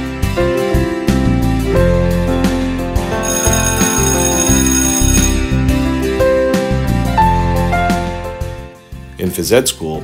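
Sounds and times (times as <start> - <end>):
background music: 0.0 - 10.0
high ringing signal: 3.2 - 5.6.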